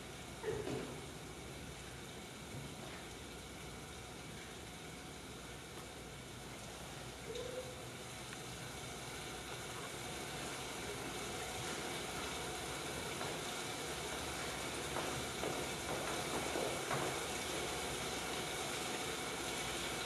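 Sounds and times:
room noise hiss: 0.0s - 20.0s.

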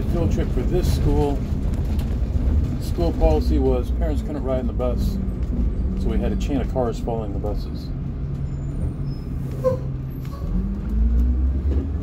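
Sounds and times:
bus engine rumbling: 0.0s - 12.0s
brief squeak: 8.4s - 10.6s.

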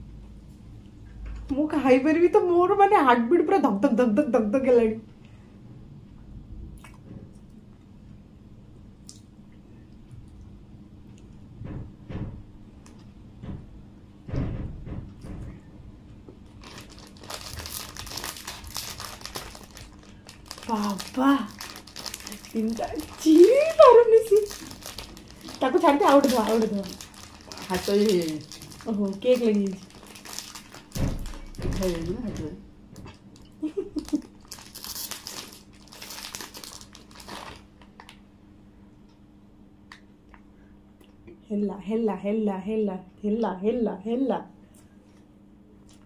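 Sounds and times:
plastic wrappers crinkling and tearing: 16.5s - 38.1s.

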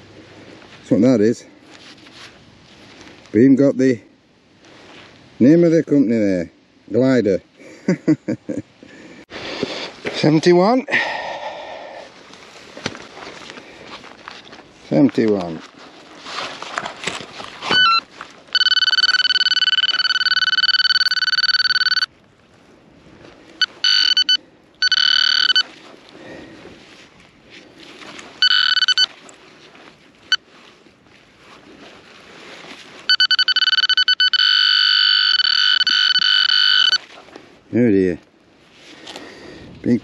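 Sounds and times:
pinpointer high-pitched alert tone: 17.7s - 22.1s, 23.6s - 25.7s, 28.4s - 29.1s, 33.1s - 37.0s.

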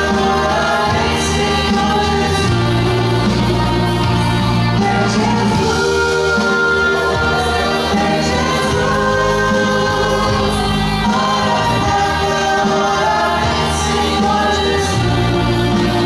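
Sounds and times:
woman leading singing: 0.0s - 4.1s, 4.7s - 16.0s
bass guitar line: 0.0s - 16.0s
electric and acoustic guitars: 0.0s - 16.0s
gospel group singing: 0.0s - 16.0s.

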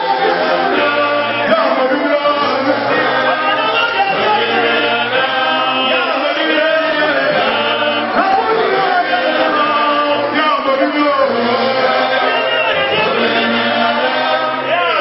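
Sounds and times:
congregation chanting: 0.0s - 15.0s.

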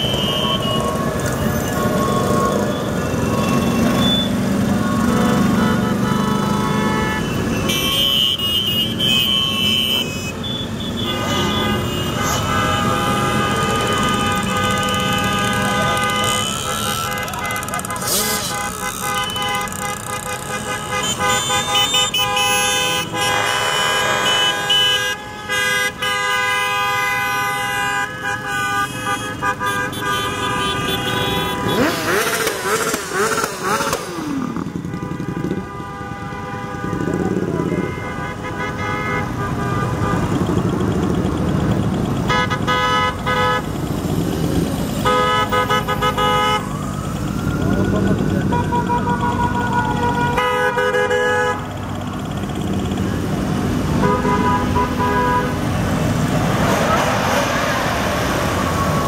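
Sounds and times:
horns honking: 0.0s - 59.0s
motorcycles riding past: 30.7s - 35.7s, 51.6s - 59.0s
engine revving: 31.0s - 35.6s, 51.6s - 59.0s.

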